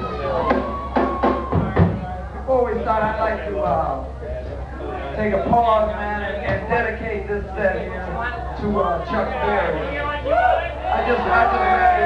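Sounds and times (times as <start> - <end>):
drum hits: 0.4 - 2.1.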